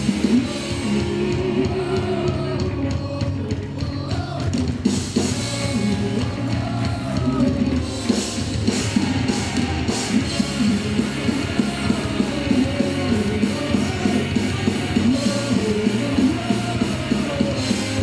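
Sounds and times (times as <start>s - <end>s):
bass guitar: 0.0s - 18.0s
drum kit: 0.0s - 18.0s
electric guitars: 0.0s - 18.0s
person singing: 0.0s - 18.0s.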